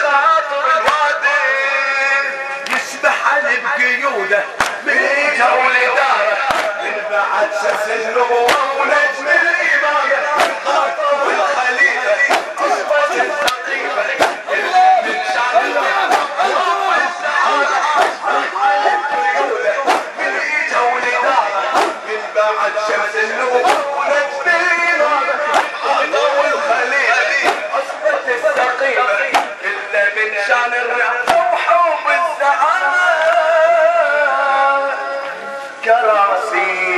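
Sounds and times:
crowd voices chanting: 0:00.0 - 0:36.9
lead reciter chanting: 0:00.0 - 0:36.9
chest-beating slaps: 0:04.6 - 0:04.9, 0:06.4 - 0:06.9, 0:07.6 - 0:08.9, 0:10.4 - 0:10.9, 0:12.2 - 0:16.8, 0:17.4 - 0:20.4, 0:21.7 - 0:22.1, 0:23.6 - 0:24.0, 0:25.5 - 0:26.0, 0:27.4 - 0:28.7, 0:29.3 - 0:29.6, 0:31.2 - 0:31.5.

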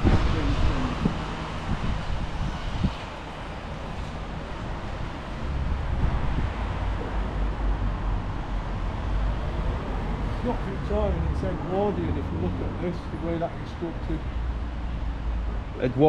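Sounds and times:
wind buffeting microphone: 0:00.0 - 0:12.6.

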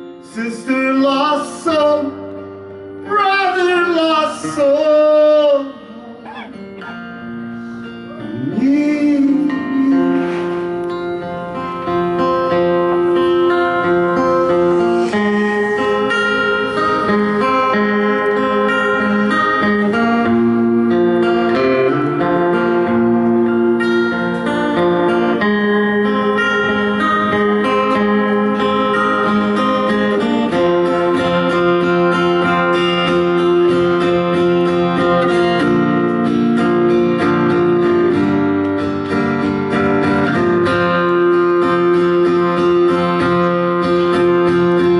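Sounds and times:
acoustic guitar strumming: 0:00.0 - 0:44.9.

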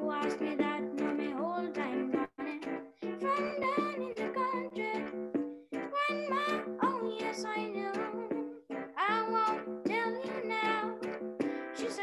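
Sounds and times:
child singing: 0:00.0 - 0:02.6, 0:03.2 - 0:05.0, 0:05.9 - 0:08.4, 0:09.0 - 0:11.1, 0:11.7 - 0:12.0
electronic keyboard chords: 0:00.0 - 0:12.0.

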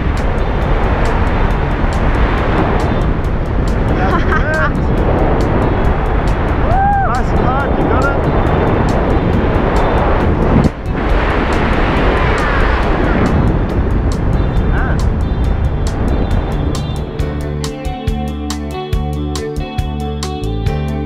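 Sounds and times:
wind rushing over microphone: 0:00.0 - 0:20.5
background music with steady beat: 0:00.0 - 0:21.0.

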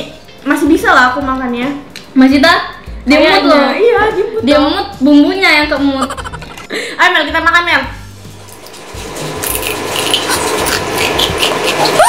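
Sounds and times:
chewing: 0:09.4 - 0:12.0.

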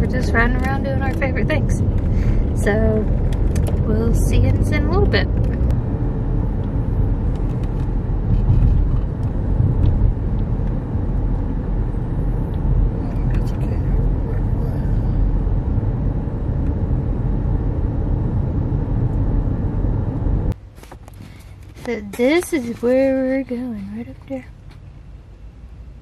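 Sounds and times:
car engine and tyre rumble: 0:00.0 - 0:26.0.

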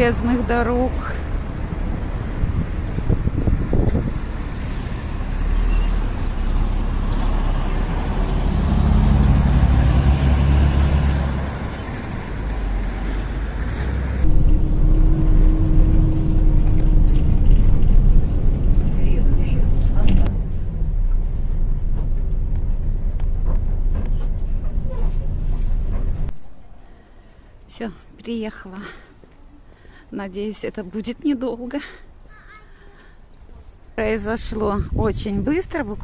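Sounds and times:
bus engine and road noise: 0:00.0 - 0:27.7, 0:30.7 - 0:36.0
steady hum: 0:14.2 - 0:18.7.

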